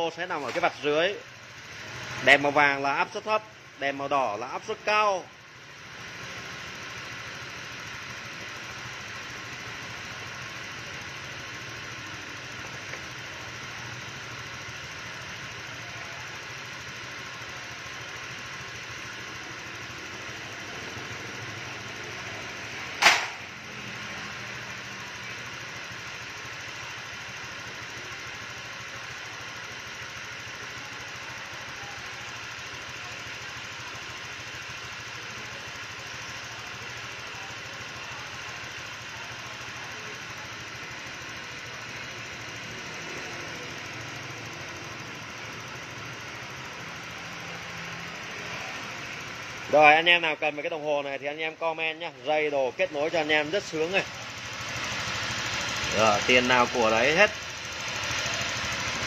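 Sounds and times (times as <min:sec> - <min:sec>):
scooter engine idling: 0:00.0 - 0:59.0
loud sharp crack: 0:23.0 - 0:23.4.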